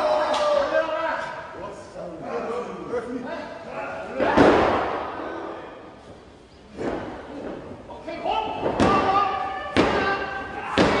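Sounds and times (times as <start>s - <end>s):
people shouting: 8.3s - 11.0s.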